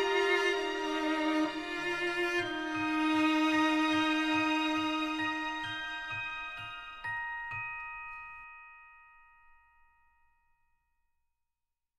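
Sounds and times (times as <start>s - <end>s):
bell-like chime tones: 0.0s - 10.9s.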